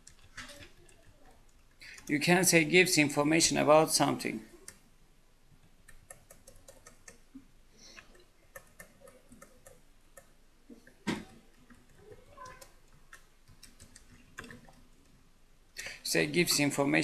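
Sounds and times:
keyboard keystrokes clicking: 5.9s - 7.2s, 11.2s - 14.8s.

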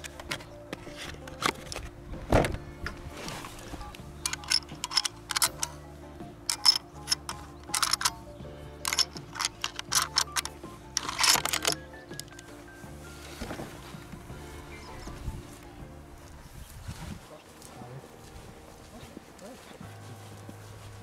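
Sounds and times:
metallic clicks of cartridges loading: 0.0s - 1.9s, 4.2s - 5.8s, 6.5s - 8.2s, 8.8s - 12.5s
background music: 0.0s - 21.0s.

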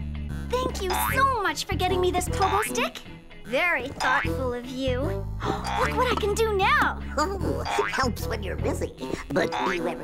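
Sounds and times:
light background music: 0.0s - 10.0s
cartoon character voice: 0.6s - 3.0s.

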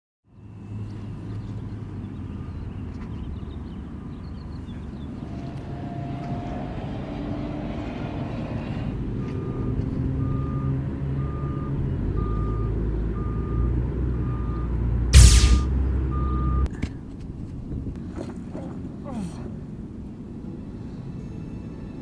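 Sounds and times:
loud burst: 15.2s - 15.7s.

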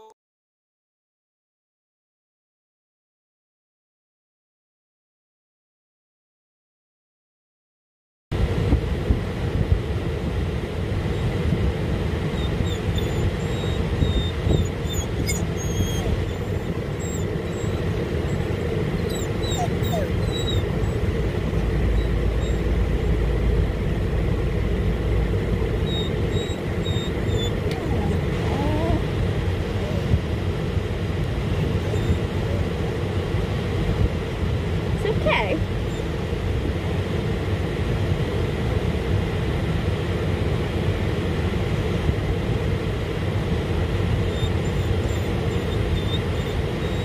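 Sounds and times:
low rumble in van cabin: 8.4s - 47.0s
dog whining: 12.3s - 23.2s, 25.7s - 30.2s, 31.6s - 32.7s, 44.2s - 47.0s.

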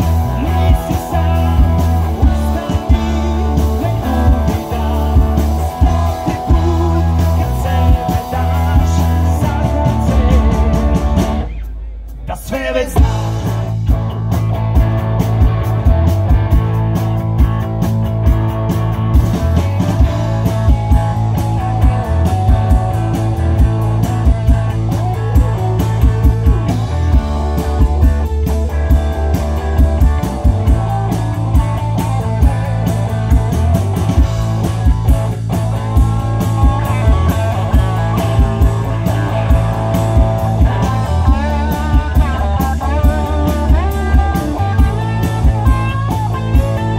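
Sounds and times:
bass guitar: 0.0s - 46.9s
drum kit steady beat: 0.0s - 46.9s
electric guitars: 0.0s - 46.9s
live rock band playing: 0.0s - 46.9s.

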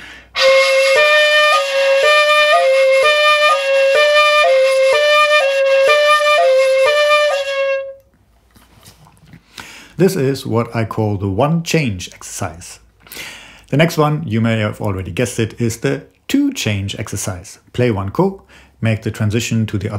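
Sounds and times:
bamboo flute alternating two notes: 0.4s - 8.1s.

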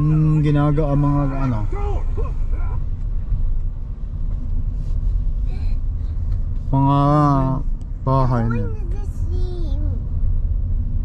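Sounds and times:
car rumbling on gravel road: 0.0s - 11.0s.

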